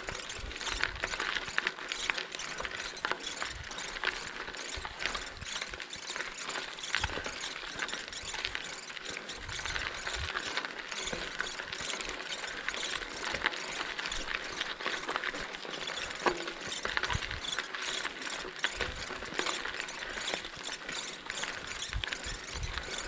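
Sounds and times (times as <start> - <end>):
bicycle freewheel ticking: 0.0 - 23.0
tyres crunching over gravel: 0.0 - 23.0.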